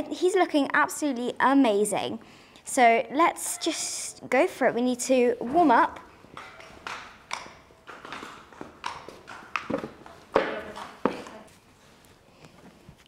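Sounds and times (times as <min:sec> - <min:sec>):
hooves clip-clopping on concrete: 0:05.4 - 0:13.0.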